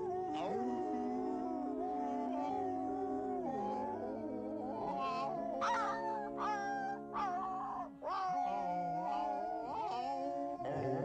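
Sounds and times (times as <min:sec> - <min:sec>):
voices howling in harmony: 0:00.0 - 0:11.0.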